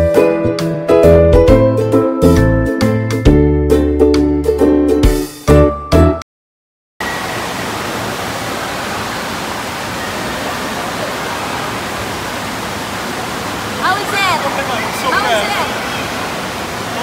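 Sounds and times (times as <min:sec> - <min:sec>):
churning water rushing: 0:07.0 - 0:17.0.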